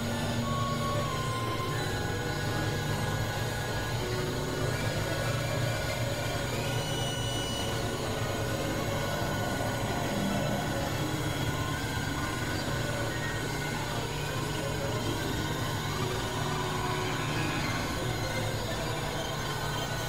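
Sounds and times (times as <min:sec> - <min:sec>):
low synthesizer drone: 0:00.0 - 0:20.0.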